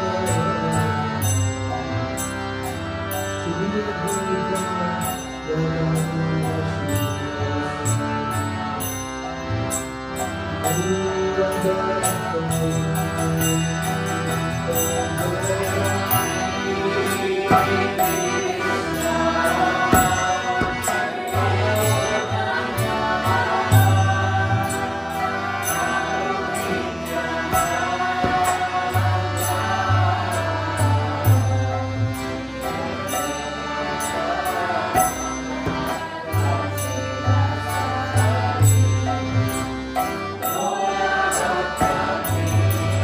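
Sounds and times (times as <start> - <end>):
harmonium sustained chords: 0.0 - 43.0
reed organ tones: 0.0 - 43.0
hand cymbal chings: 0.3 - 43.0
people chanting: 14.7 - 39.1, 40.4 - 43.0
drum strikes: 19.8 - 21.1.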